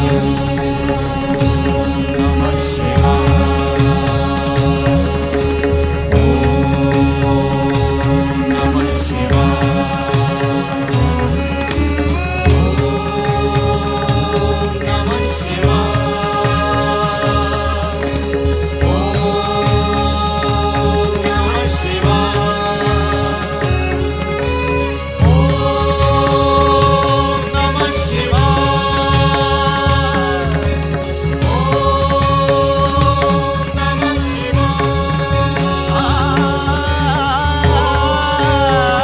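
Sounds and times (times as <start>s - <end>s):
devotional chanting: 0.0s - 39.0s
instrumental drones: 0.0s - 39.0s.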